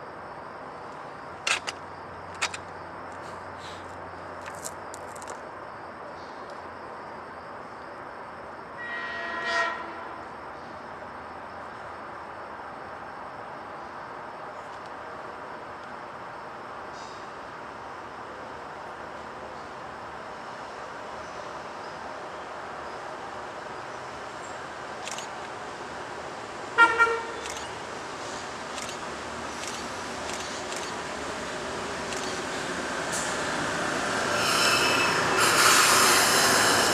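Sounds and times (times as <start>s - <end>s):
train horn blast: 8.8s - 10.2s, 26.8s - 27.4s.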